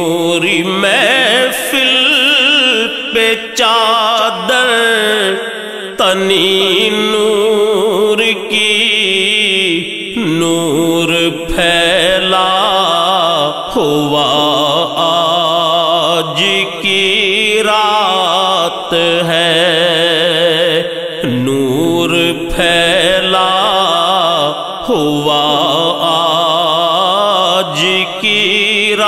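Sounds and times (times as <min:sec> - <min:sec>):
layered voices chanting and humming: 0:09.6 - 0:29.0.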